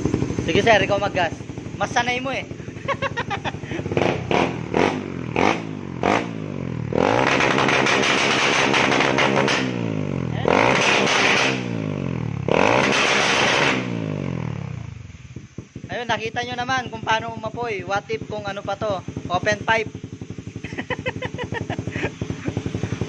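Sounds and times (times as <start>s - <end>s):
exhaust popping: 0.0s - 23.0s
motorcycle engine revving: 0.0s - 23.0s.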